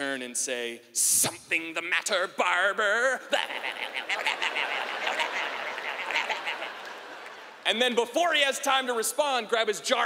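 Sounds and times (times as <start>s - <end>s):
audience laughing: 3.3s - 7.6s
people clapping: 4.1s - 7.8s.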